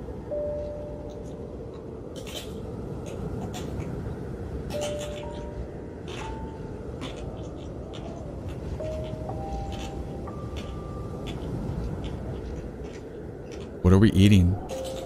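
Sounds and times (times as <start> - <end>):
sparse piano melody: 0.1 - 3.5, 4.6 - 15.0
man's voice: 13.8 - 14.6.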